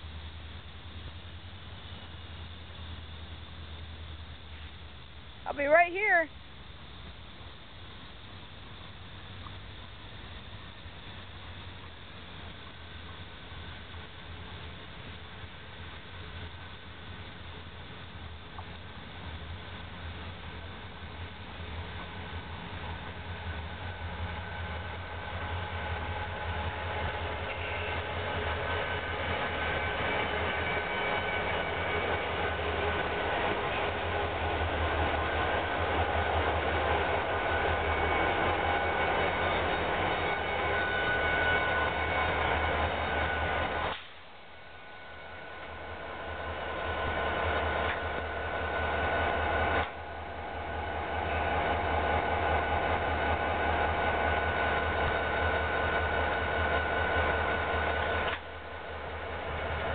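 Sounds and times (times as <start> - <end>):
diesel locomotive engine rumble: 0.0 - 59.9
train rushing past: 0.0 - 59.9.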